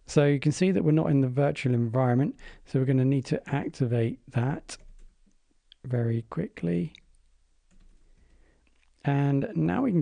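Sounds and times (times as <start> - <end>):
soft keyboard typing: 4.7 - 5.4, 6.9 - 9.0.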